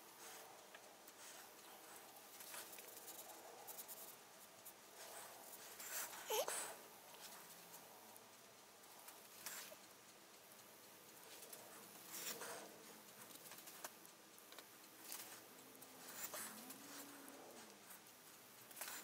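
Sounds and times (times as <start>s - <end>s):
paintbrush rustling on paper: 0.1s - 7.9s.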